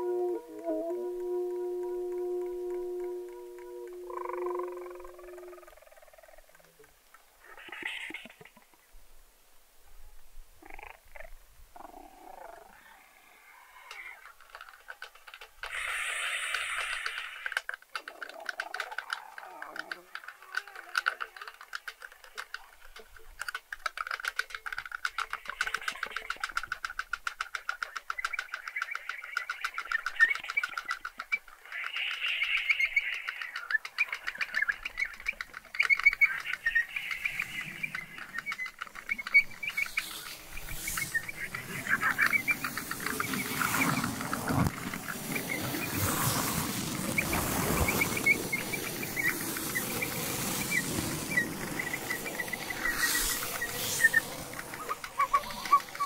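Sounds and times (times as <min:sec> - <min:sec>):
saxophone improvising: 0:00.0 - 0:05.6
flute improvising: 0:00.0 - 0:05.8, 0:34.8 - 0:56.0.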